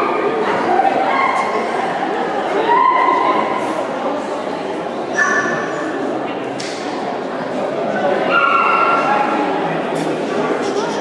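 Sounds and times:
murmur of voices in a hall: 0.0 - 11.0.

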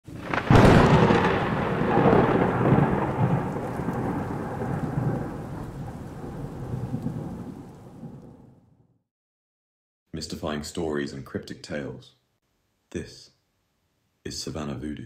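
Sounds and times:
steady rain: 0.1 - 8.5
thunder crack and rumble: 0.1 - 8.8.

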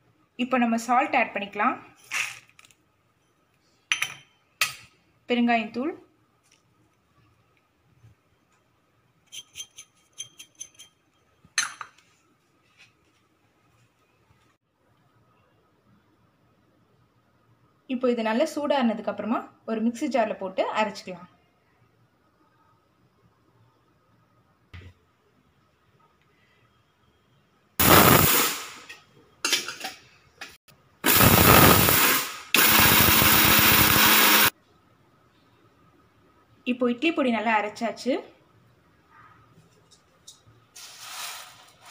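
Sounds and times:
mixer grinder motor: 31.1 - 34.5.

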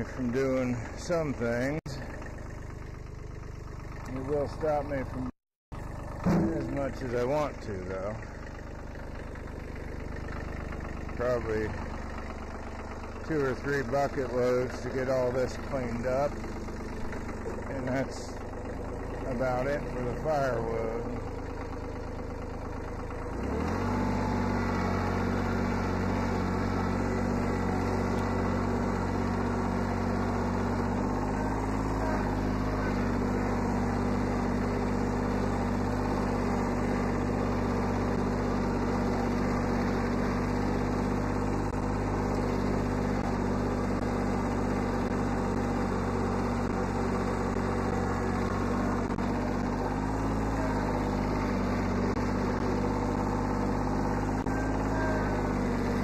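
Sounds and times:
diesel tractor engine running: 0.0 - 56.0.

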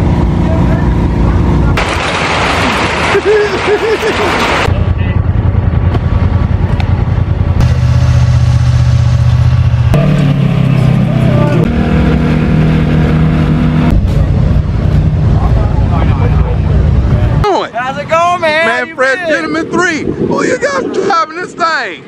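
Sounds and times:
utility vehicle engines running: 0.0 - 18.8.

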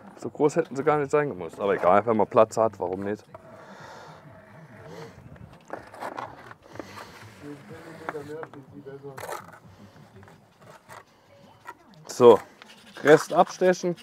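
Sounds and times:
trowel scraping mortar: 4.8 - 14.0.

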